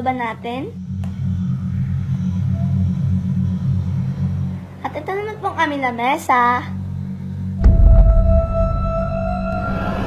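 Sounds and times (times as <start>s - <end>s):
low rumble: 0.6s - 4.8s, 6.7s - 10.0s.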